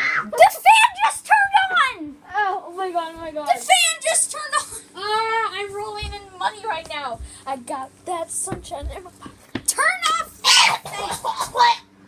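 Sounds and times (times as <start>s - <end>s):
small electric fan humming: 0.0s - 12.0s
girls exclaiming excitedly: 9.7s - 11.8s.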